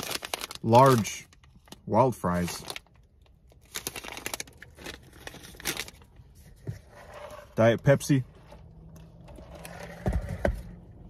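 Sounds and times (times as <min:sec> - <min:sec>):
paper packaging rustling: 0:00.0 - 0:06.1.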